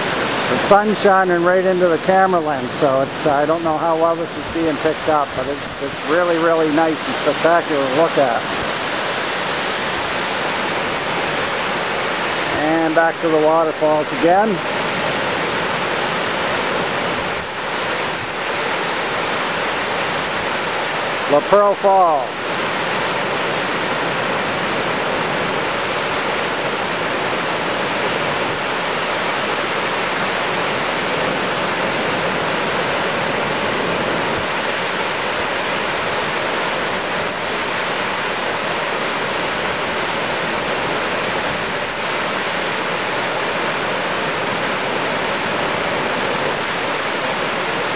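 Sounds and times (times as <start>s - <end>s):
waterfall rushing: 0.0s - 47.9s.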